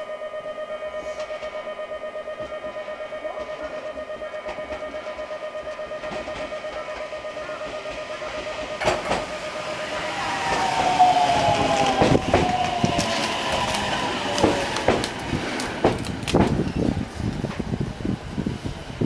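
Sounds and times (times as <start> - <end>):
whine falling in pitch: 0.0 - 14.5
electric train braking: 0.0 - 19.0
wheels clacking over rail joints: 2.4 - 18.1.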